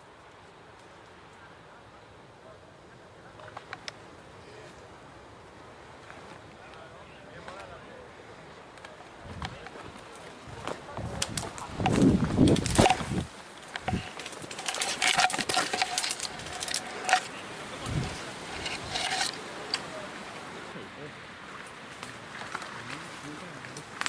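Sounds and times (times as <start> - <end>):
branches and leaves rustling: 0.0 - 24.0
twigs cracking: 8.7 - 20.1, 21.6 - 24.0.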